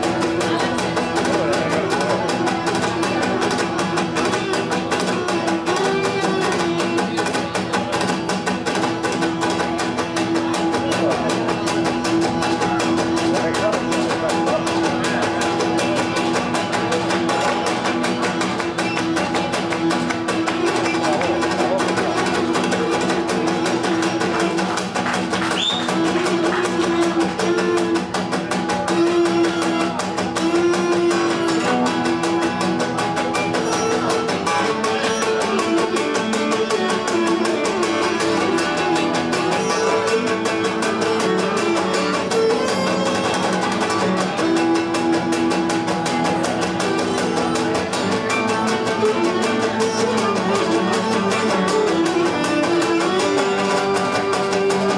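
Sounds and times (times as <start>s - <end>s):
bowed lyra melody: 25.8s - 54.9s.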